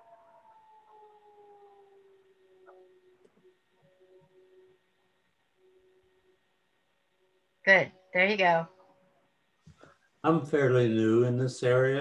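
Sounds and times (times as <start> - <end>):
faint humming held tones: 0.0 - 12.0.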